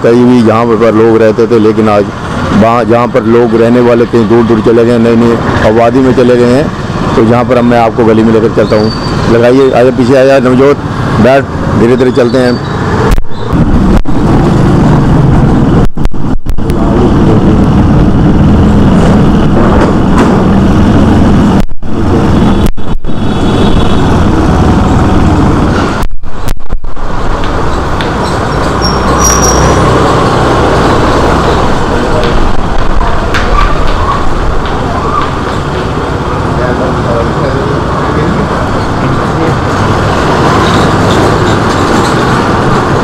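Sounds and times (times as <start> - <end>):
wind buffeting microphone: 30.4 - 36.6.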